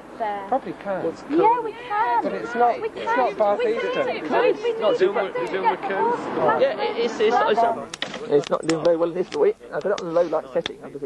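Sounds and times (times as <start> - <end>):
people talking: 0.2 - 11.0.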